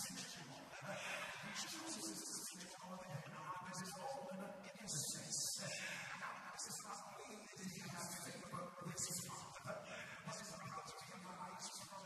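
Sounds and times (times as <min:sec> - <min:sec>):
man preaching into microphone: 0:00.0 - 0:12.0.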